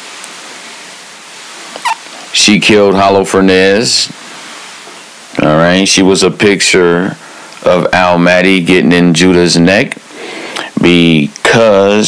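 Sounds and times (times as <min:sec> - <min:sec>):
background hiss: 0:00.0 - 0:12.0
sharp mouth sound: 0:01.8 - 0:02.0.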